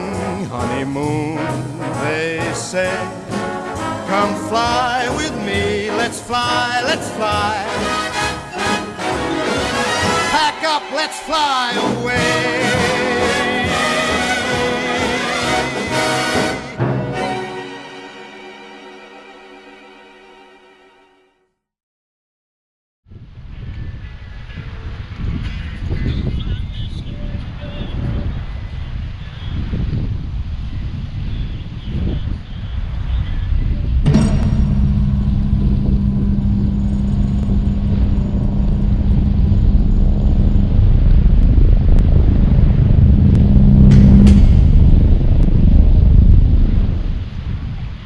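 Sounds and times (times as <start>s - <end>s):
wind buffeting microphone: 23.1s - 34.2s, 34.9s - 48.0s
deep rumble with hum: 32.4s - 48.0s
swoosh: 33.9s - 47.7s.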